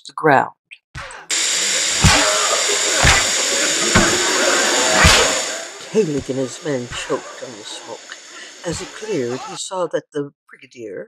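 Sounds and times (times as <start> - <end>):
dull thumps: 1.3 - 7.2
loud hiss of smoke: 1.3 - 9.6
smoke bomb pop: 1.9 - 4.3, 4.9 - 5.4.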